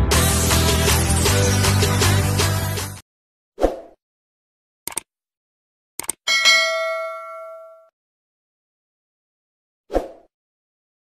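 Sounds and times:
mouse clicks: 4.9s - 5.1s, 6.0s - 6.2s
notification bell ding: 6.3s - 7.9s.

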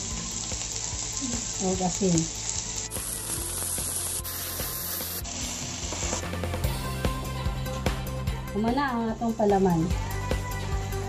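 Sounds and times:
food sizzling in a pan: 0.0s - 7.3s.

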